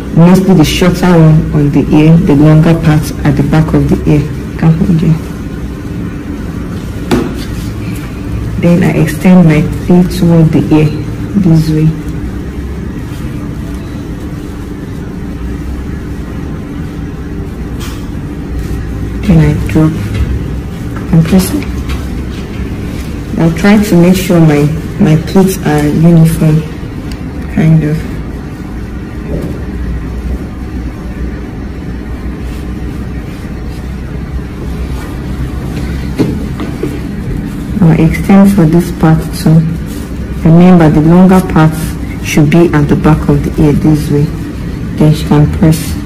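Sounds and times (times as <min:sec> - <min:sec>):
low machine hum: 0:00.0 - 0:46.0
low mechanical rumble: 0:00.0 - 0:46.0.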